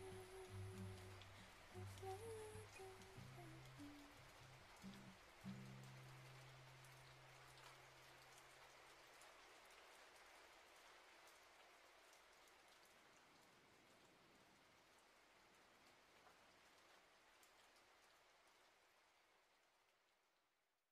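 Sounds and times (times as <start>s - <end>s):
faint steady rain: 0.0s - 20.9s.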